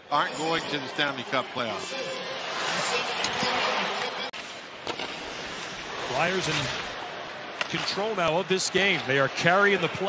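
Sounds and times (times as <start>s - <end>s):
arena crowd voices: 0.0s - 4.4s, 5.5s - 10.0s.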